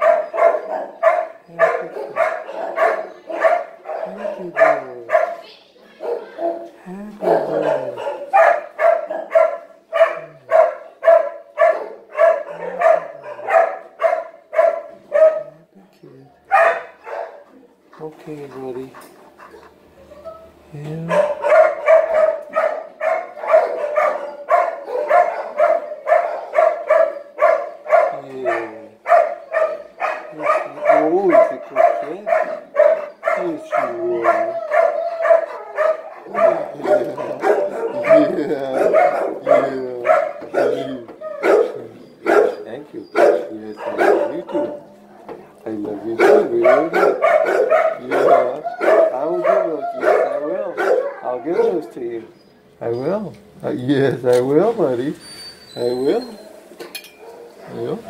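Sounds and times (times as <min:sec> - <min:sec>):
dog barking: 0:00.0 - 0:15.6, 0:16.5 - 0:17.7, 0:21.0 - 0:52.1, 0:57.2 - 0:58.0.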